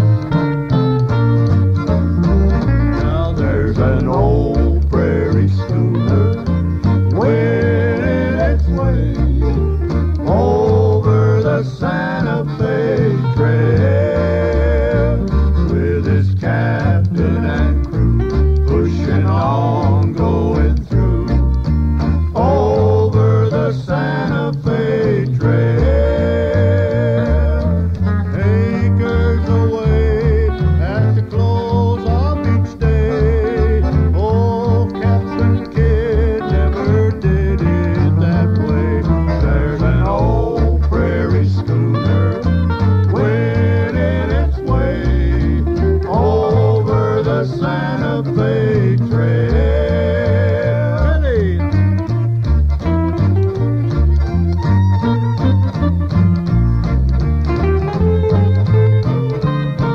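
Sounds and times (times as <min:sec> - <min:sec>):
country string band music: 0:00.0 - 0:59.9.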